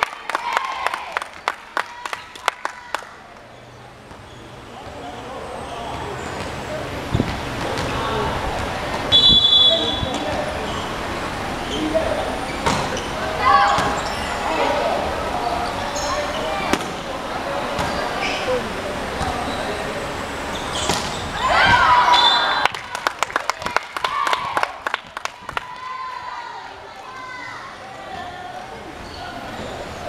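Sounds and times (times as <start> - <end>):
people clapping: 0.0 - 3.5, 22.4 - 27.1
crowd cheering: 0.0 - 3.7, 21.2 - 28.9
people calling and shouting: 0.0 - 30.0.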